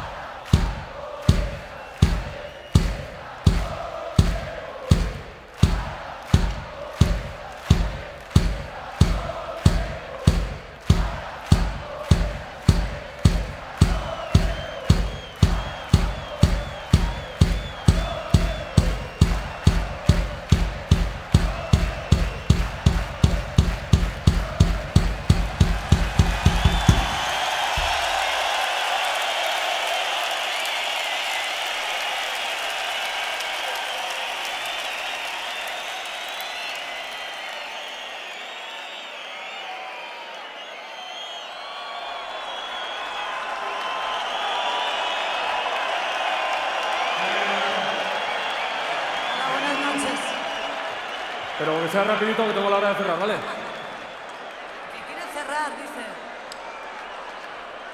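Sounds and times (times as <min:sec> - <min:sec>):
kick drum beat: 0:00.0 - 0:28.6
crowd cheering and applauding: 0:00.0 - 0:57.9.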